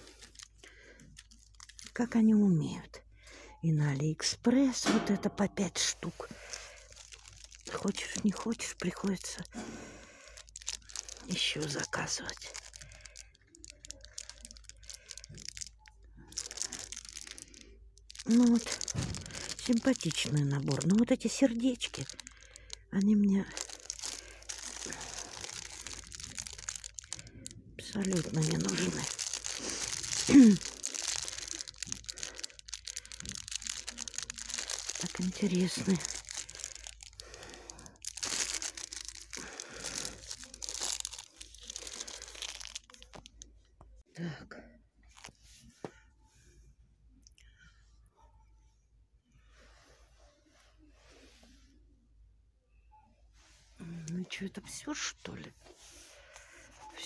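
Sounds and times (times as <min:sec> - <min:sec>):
plastic packet crinkling: 0:00.0 - 0:02.2, 0:04.6 - 0:43.7, 0:45.1 - 0:45.4.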